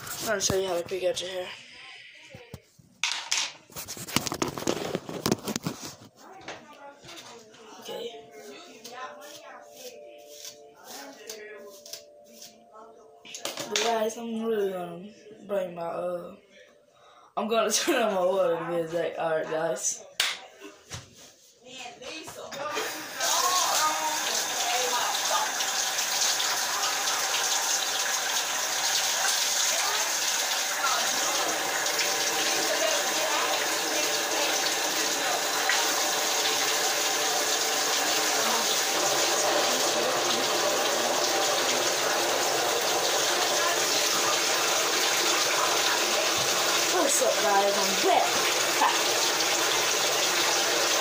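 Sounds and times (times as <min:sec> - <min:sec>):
shower water running: 0:00.0 - 0:01.5, 0:22.6 - 0:51.0.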